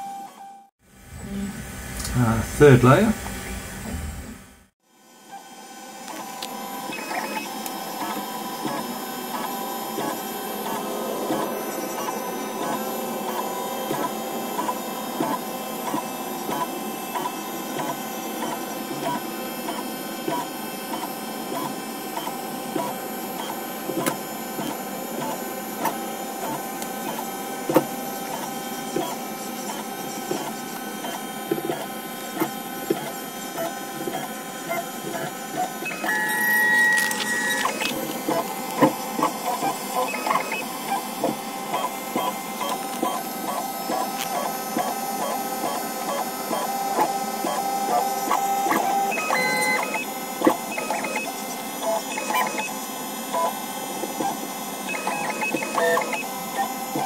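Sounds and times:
stepper motors whining: 5.3s - 57.0s.

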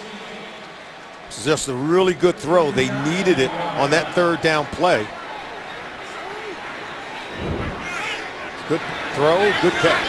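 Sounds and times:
stadium crowd murmur: 0.0s - 10.0s.

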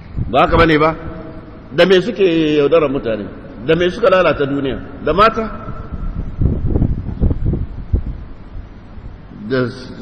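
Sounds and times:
wind buffeting microphone: 0.0s - 1.4s, 4.3s - 9.3s.

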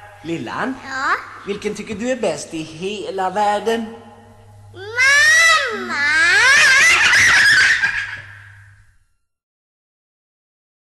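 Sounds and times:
low hum: 0.0s - 9.2s
girl giggling: 5.9s - 8.4s.

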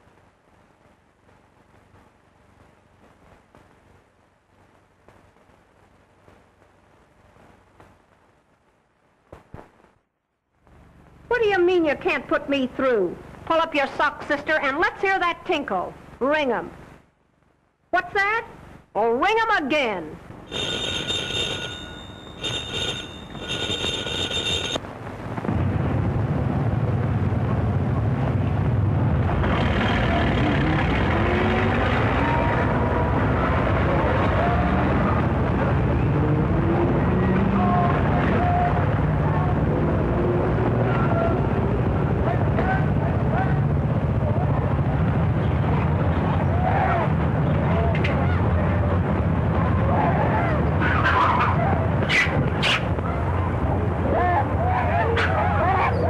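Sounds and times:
telephone bell ringing: 20.5s - 24.8s
loud rumbling din: 25.1s - 55.8s.

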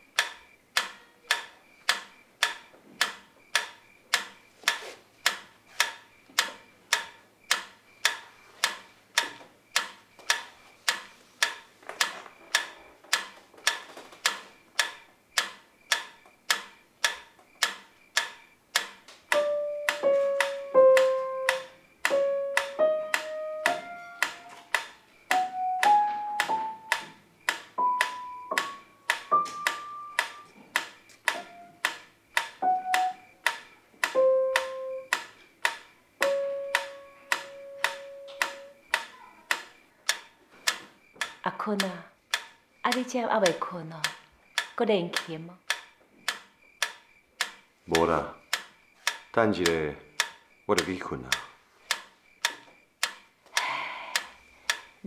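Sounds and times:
metronome ticking: 0.0s - 55.0s
piano slow melody: 19.4s - 27.2s, 27.8s - 30.6s, 31.3s - 31.9s, 32.6s - 33.3s, 34.1s - 35.1s, 36.2s - 38.8s.

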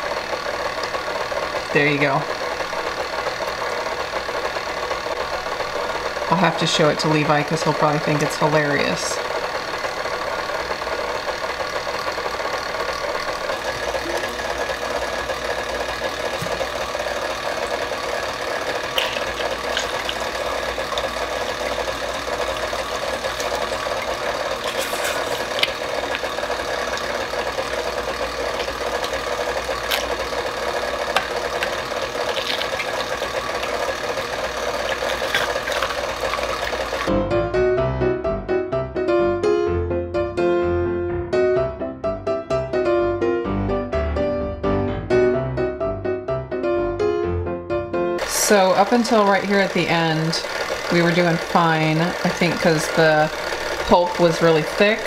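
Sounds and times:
stand mixer motor running: 0.0s - 37.2s, 48.2s - 55.0s
piano music: 13.2s - 49.2s.

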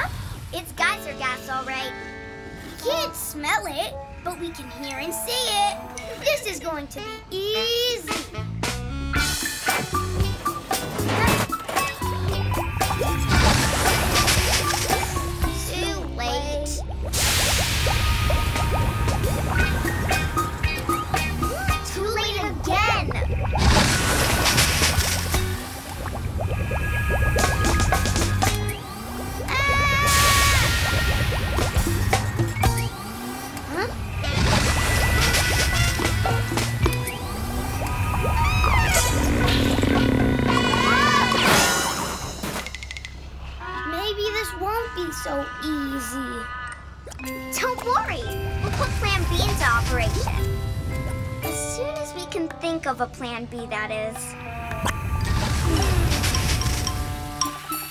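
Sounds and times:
cartoon background music: 0.0s - 43.1s, 44.1s - 57.9s
playful sound effects: 11.0s - 42.9s
geyser hissing: 17.1s - 20.5s, 23.5s - 32.8s
sliding pitch glides: 22.5s - 41.4s.

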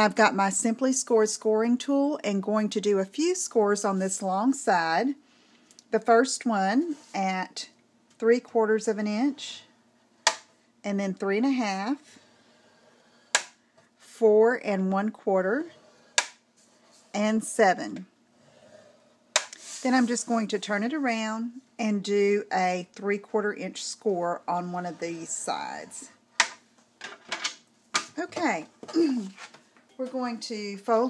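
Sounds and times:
scoring board clicks: 13.3s - 13.6s, 16.2s - 16.4s.

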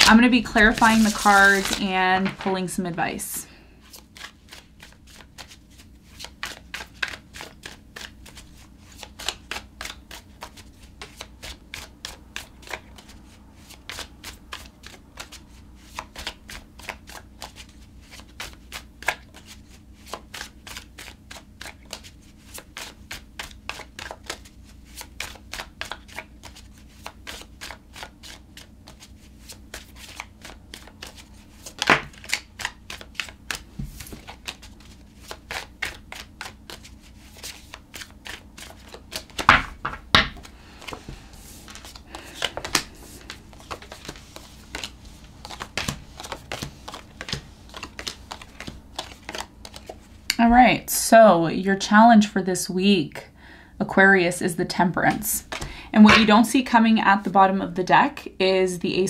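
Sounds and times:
cards being shuffled: 0.0s - 2.8s, 3.8s - 50.3s, 55.4s - 56.4s.

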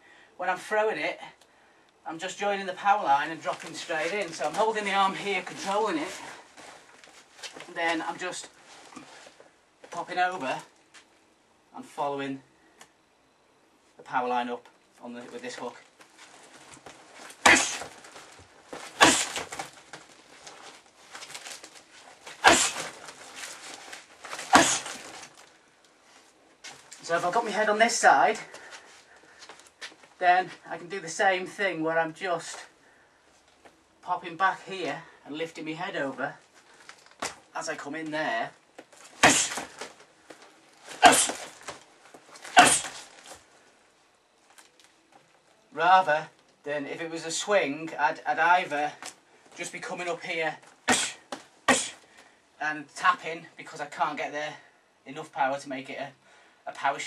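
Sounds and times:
faint rustling: 2.9s - 11.3s, 13.8s - 31.4s, 32.3s - 45.6s
punches hitting heavy bag: 17.4s - 17.9s, 19.0s - 19.6s, 22.4s - 23.0s, 24.4s - 25.1s, 39.2s - 39.8s, 42.6s - 43.0s.

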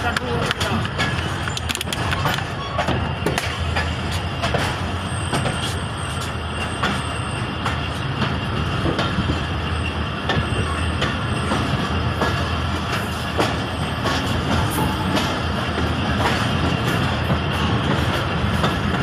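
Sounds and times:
train rumbling over track: 0.0s - 19.0s
wheels clacking on rail joints: 0.0s - 19.0s
faint high wheel squeal: 5.0s - 8.1s.

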